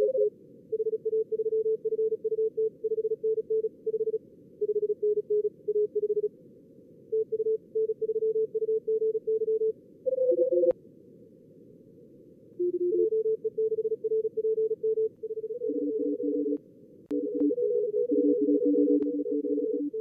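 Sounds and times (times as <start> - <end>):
morse code tones: 12.6 - 20.0.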